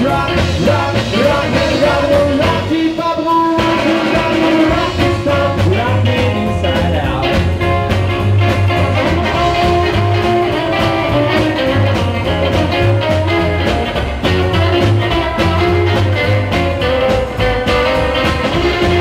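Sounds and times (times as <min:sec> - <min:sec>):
drums: 0:00.0 - 0:19.0
electric guitar: 0:00.0 - 0:19.0
upright bass line: 0:00.0 - 0:19.0.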